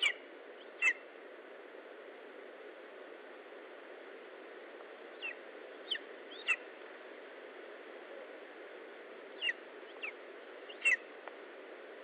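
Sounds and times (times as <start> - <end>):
eagle chick calling: 0.0 - 1.0, 5.2 - 6.7, 9.4 - 11.1
steady hiss: 0.0 - 12.0.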